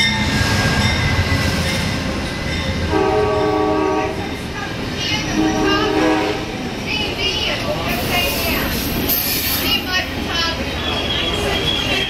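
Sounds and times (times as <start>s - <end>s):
train rumbling past: 0.0s - 12.0s
train horn: 2.9s - 4.2s, 5.3s - 6.6s.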